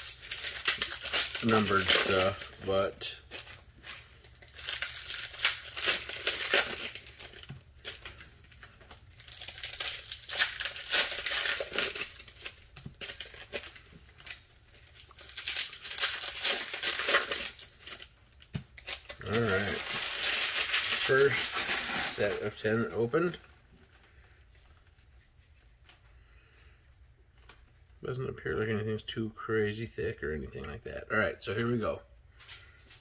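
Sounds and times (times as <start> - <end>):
foil wrappers crinkling and tearing: 0.0 - 24.8.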